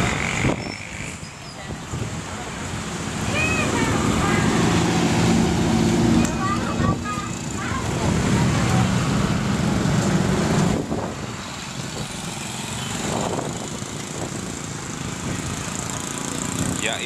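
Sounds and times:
motorcycles going past: 0.0 - 17.0
street traffic passing: 0.0 - 17.0
vehicle engine rumble: 0.0 - 17.0.

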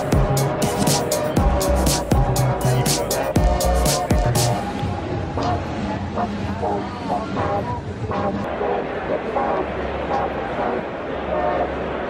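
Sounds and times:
many overlapping voices talking: 0.0 - 12.0.

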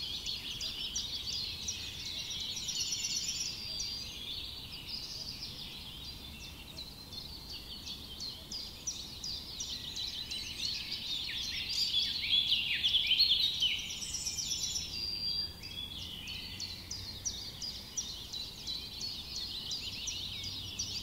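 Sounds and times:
small birds chirping: 0.0 - 21.0.

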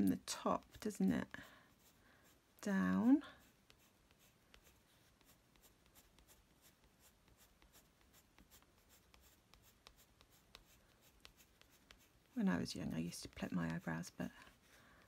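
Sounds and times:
pencil scratching on paper: 0.0 - 15.0.

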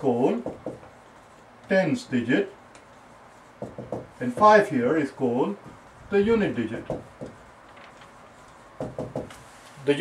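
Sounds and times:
marker tapping on whiteboard: 0.4 - 1.0, 3.6 - 4.7, 6.7 - 7.4, 8.8 - 9.4.

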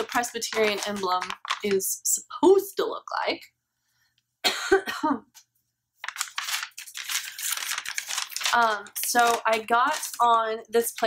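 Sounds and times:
paper rustling and crinkling: 0.0 - 1.8, 6.0 - 11.0.

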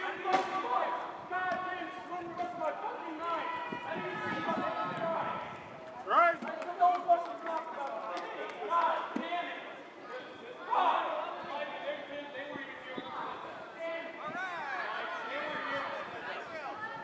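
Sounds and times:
players shouting and calling out: 0.0 - 17.0.

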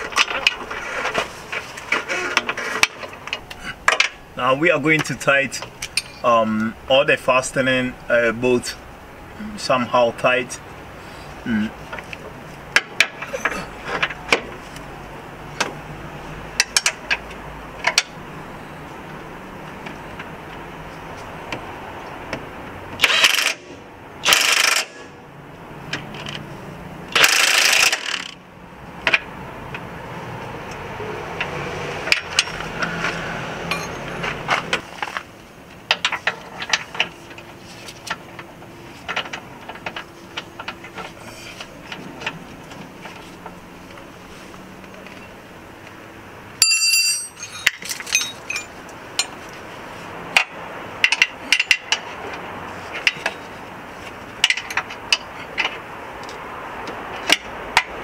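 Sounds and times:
metallic clinks of tools: 33.7 - 34.1, 46.6 - 49.3.

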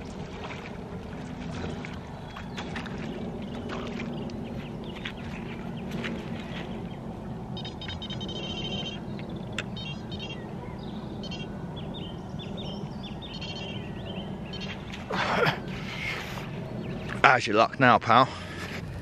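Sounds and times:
birds chirping: 0.0 - 19.0
electronic bite alarms bleeping: 7.6 - 9.0, 9.8 - 10.4.

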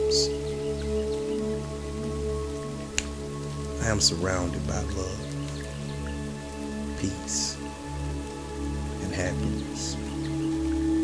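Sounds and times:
ambient music pad: 0.0 - 11.0
rain: 0.0 - 11.0.

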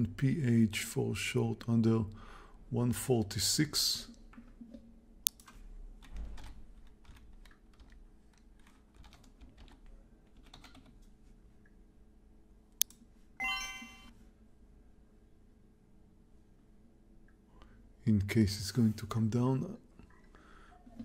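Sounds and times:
keyboard and mouse clicks: 4.3 - 11.0
electronic chime tone: 13.4 - 14.1.

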